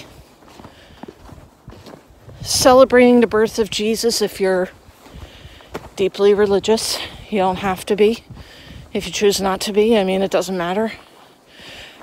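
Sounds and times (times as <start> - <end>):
faint footsteps walking: 0.0 - 12.0.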